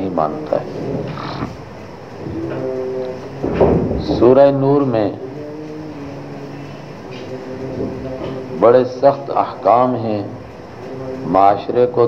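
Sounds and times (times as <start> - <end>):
steady droning hum: 0.0 - 12.0.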